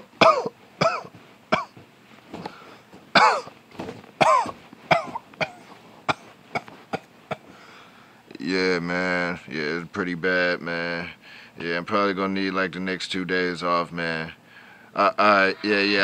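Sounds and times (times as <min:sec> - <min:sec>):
man clearing his throat: 0:00.2 - 0:01.8, 0:03.2 - 0:03.5, 0:04.2 - 0:07.5
man coughing: 0:00.2 - 0:01.8, 0:03.2 - 0:03.5, 0:04.2 - 0:07.5.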